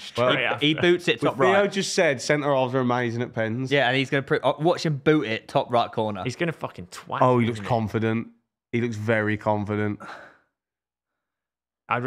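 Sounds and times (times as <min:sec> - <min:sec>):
man speaking: 0:00.0 - 0:10.1.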